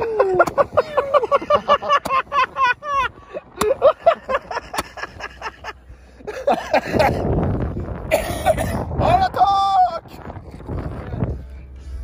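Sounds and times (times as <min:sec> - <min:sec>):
men laughing hard: 0:00.0 - 0:08.9
noisy rush: 0:00.0 - 0:12.0.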